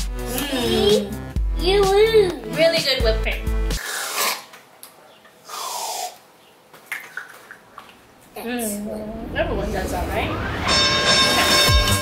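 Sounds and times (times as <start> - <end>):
whipped cream can hissing: 3.8 - 4.6, 5.5 - 6.2.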